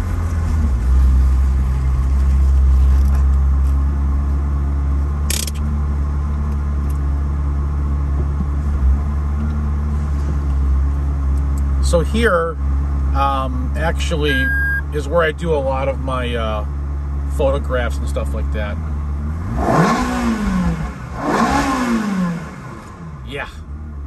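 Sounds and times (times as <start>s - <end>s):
car engine droning in tunnel: 0.0s - 24.0s.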